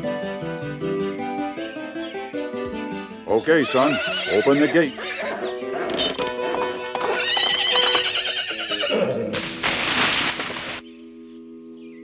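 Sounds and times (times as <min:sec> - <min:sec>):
hooves clopping: 0:02.5 - 0:10.8
horse whinnying: 0:03.6 - 0:09.5.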